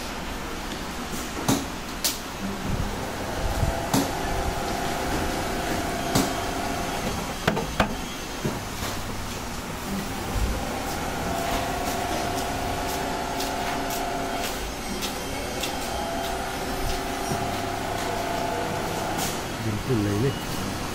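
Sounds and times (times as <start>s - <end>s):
motor grater humming: 2.4s - 8.9s, 9.8s - 19.6s.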